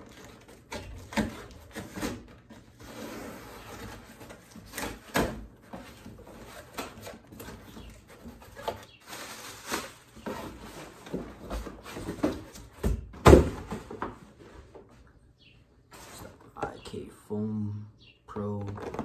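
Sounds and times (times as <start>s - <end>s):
cardboard flaps scraping and rustling: 0.0s - 15.0s, 15.9s - 16.6s.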